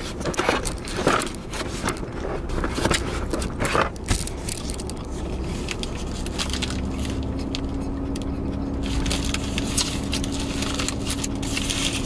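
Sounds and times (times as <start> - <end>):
car cabin rumble: 0.0 - 12.0
paper and foil wrapper rustling: 0.0 - 12.0.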